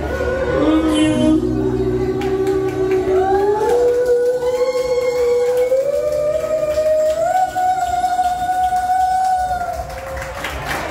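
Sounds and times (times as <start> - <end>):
woman singing long held note: 0.0 - 9.8.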